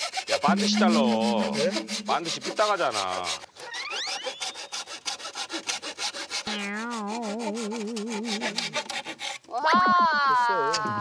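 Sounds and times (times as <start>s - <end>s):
hand saw cutting bamboo: 0.0s - 9.6s
wavering pitched tone: 0.4s - 2.6s, 6.5s - 8.8s
loud falling pitched tone: 0.5s - 2.3s, 6.5s - 8.5s.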